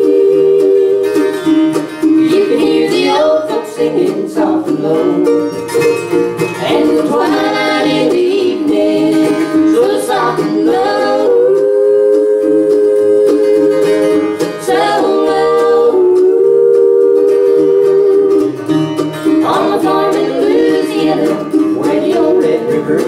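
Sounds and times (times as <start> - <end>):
voices singing harmony: 0.0 - 5.6, 6.6 - 18.6, 19.3 - 23.0
acoustic guitar: 0.0 - 23.0
mandolin: 0.0 - 23.0
upright bass: 0.0 - 23.0.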